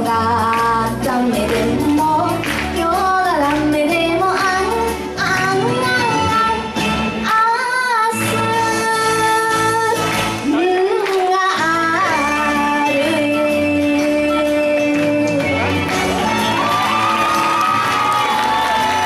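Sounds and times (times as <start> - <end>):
girl singing into microphone: 0.0 - 15.7
karaoke backing track: 0.0 - 19.0.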